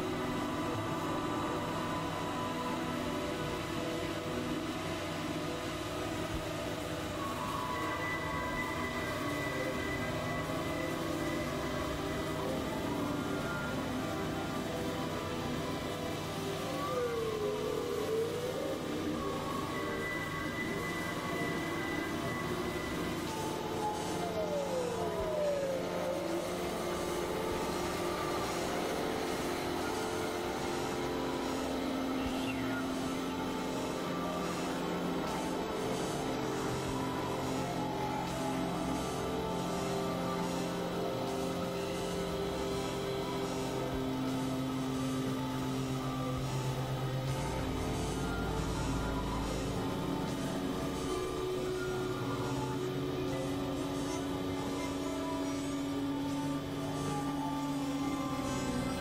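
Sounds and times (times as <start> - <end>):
overlapping held electronic tones: 0.0 - 59.0.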